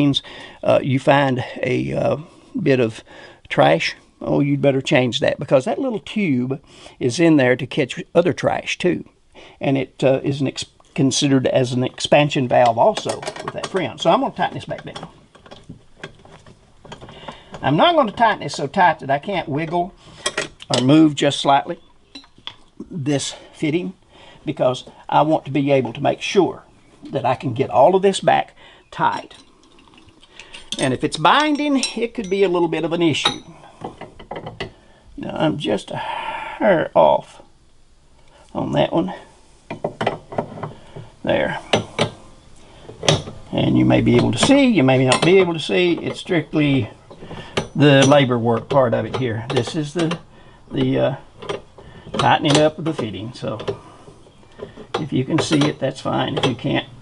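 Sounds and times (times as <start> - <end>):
metal wrenches clicking: 12.5 - 18.7, 30.4 - 34.7, 43.0 - 53.8, 54.4 - 56.9.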